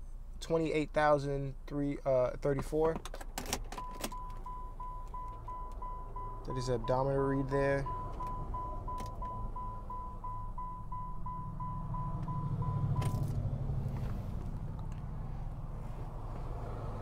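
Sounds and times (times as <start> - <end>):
car warning chime beeping: 3.8 - 13.3
low steady hum: 3.8 - 17.0.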